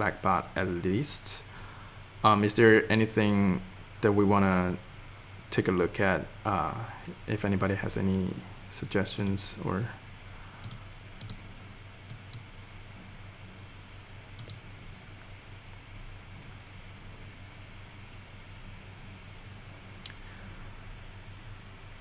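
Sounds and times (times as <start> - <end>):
low room hum: 0.0 - 22.0
computer mouse clicks: 10.6 - 11.4, 12.0 - 12.5, 14.4 - 15.3.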